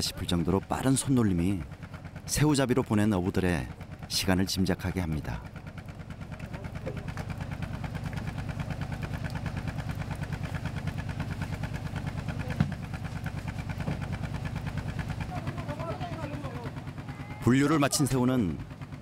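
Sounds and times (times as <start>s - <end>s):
boat engine idling: 0.0s - 19.0s
faint voices: 14.8s - 18.1s.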